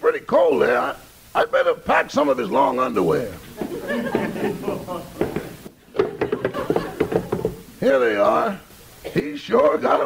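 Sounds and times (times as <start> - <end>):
audience laughter: 3.5 - 7.7
short knocks and taps: 5.2 - 7.6.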